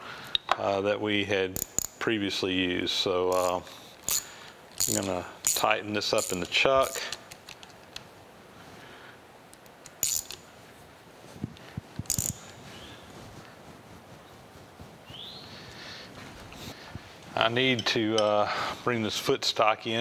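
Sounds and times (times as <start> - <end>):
metal clicks and clinks: 1.6 - 2.0, 3.3 - 8.0, 9.6 - 10.4, 12.0 - 12.4, 17.7 - 18.4.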